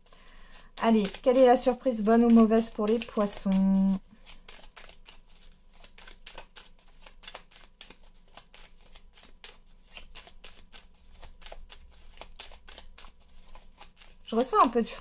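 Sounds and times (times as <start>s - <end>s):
cards being shuffled by hand: 0.0s - 15.0s.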